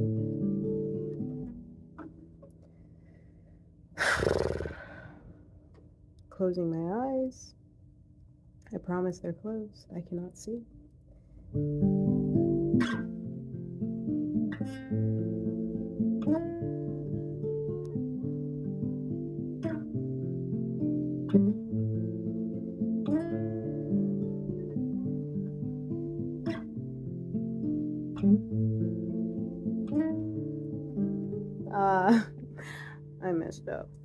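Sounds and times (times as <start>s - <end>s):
acoustic guitar picking chords: 0.0s - 2.7s, 11.5s - 34.0s.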